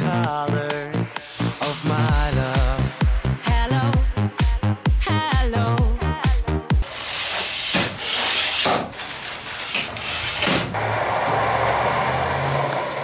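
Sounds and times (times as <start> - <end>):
sliding window scraping hiss: 6.8 - 10.7.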